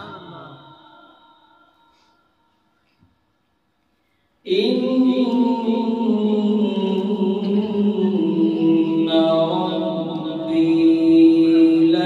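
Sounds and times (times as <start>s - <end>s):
man chanting: 0.0s - 1.6s, 4.5s - 12.0s.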